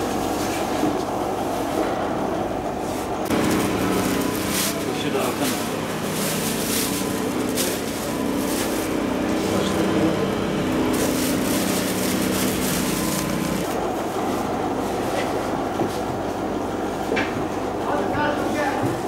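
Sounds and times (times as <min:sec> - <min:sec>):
mechanical hum: 0:00.0 - 0:19.0
plastic bag rustling: 0:03.3 - 0:13.8.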